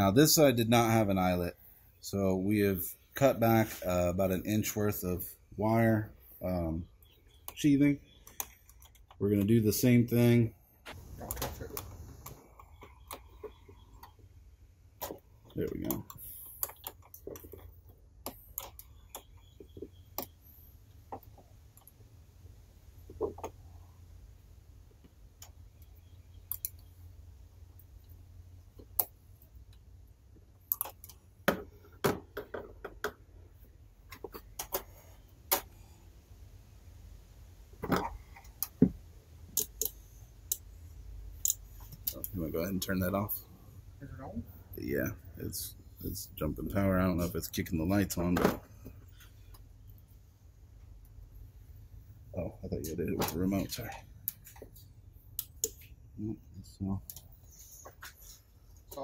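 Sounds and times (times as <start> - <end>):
wires and connectors rattling: 14.9 - 22.0.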